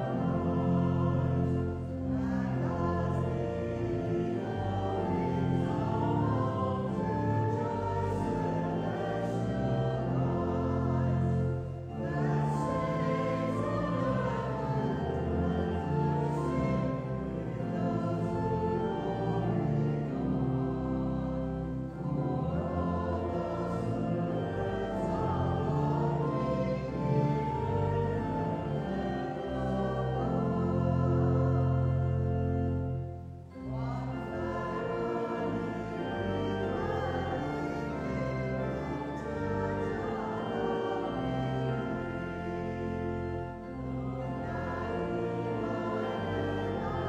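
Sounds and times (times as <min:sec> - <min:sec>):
church choir humming a hymn: 0:00.0 - 0:47.0
sustained instrument chords: 0:00.0 - 0:47.0.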